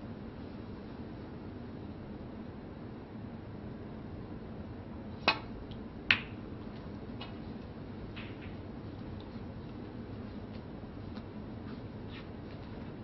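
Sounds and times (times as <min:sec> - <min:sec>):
snooker balls clicking: 0:05.3 - 0:09.9
cue striking cue ball: 0:08.2 - 0:08.6.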